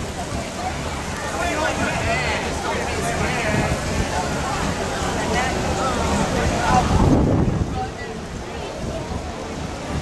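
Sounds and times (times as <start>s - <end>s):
indistinct voices chattering: 0.0s - 10.0s
wind rumble on microphone: 0.0s - 10.0s.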